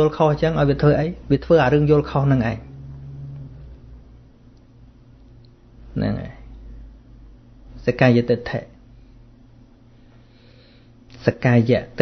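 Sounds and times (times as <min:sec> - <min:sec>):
faint recording hiss: 0:00.0 - 0:12.0
low steady hum: 0:00.0 - 0:12.0
faint low tone: 0:02.0 - 0:04.3.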